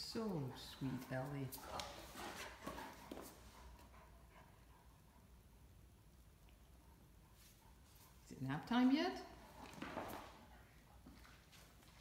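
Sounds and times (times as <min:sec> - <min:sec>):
dogs scuffling on tile floor: 0:00.2 - 0:03.8, 0:09.4 - 0:12.0.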